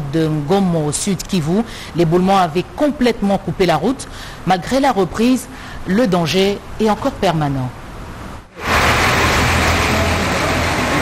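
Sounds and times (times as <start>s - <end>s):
lorry engines running: 8.6s - 11.0s.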